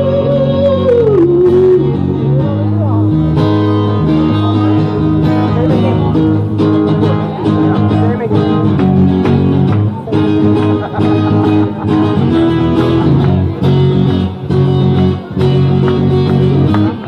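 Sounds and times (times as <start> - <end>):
acoustic guitar strumming: 0.0 - 17.0
steady bass line: 0.0 - 17.0.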